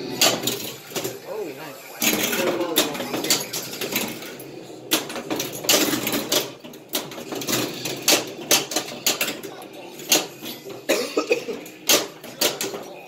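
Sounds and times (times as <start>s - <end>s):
pinball flippers and ball clacking: 0.0s - 1.3s, 2.0s - 13.0s
pinball electronic sounds: 0.0s - 13.0s.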